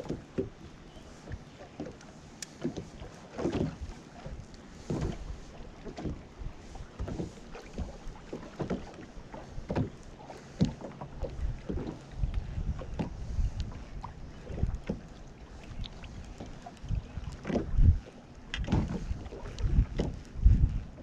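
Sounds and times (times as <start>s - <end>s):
water slapping boat hull: 0.0s - 21.0s
wind buffeting microphone: 11.1s - 21.0s.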